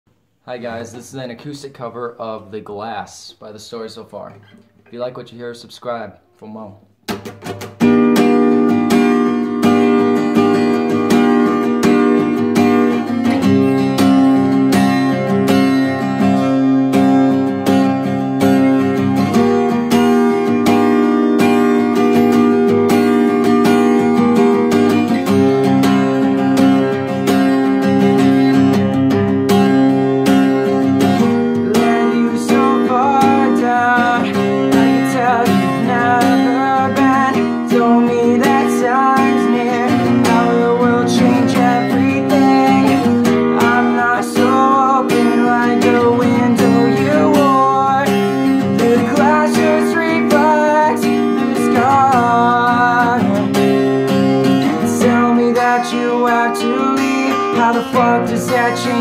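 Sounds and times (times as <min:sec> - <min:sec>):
acoustic guitar strumming: 0:00.5 - 0:59.0
man singing: 0:31.2 - 0:59.0.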